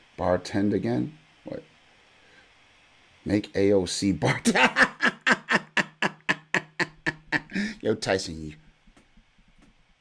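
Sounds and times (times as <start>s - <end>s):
man laughing hard: 4.3s - 7.8s.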